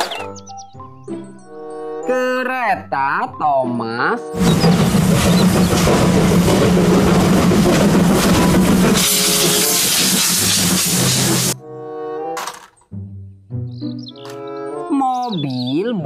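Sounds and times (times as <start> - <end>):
steam locomotive running: 4.4 - 11.6.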